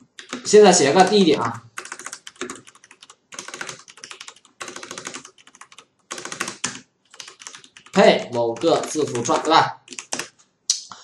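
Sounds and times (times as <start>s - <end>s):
computer keyboard typing: 0.0s - 10.4s.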